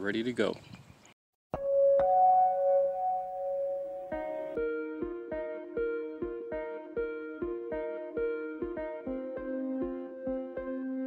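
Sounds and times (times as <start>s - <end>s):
bell-like note ringing: 1.6s - 4.6s.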